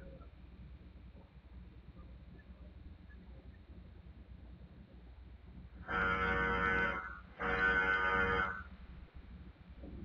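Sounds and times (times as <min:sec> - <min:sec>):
car horn honking: 0:05.9 - 0:08.6.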